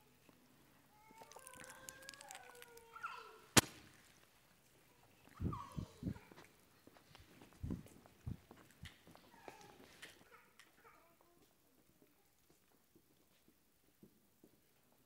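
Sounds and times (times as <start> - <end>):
plastic cups crackling and clicking: 1.0 - 3.0.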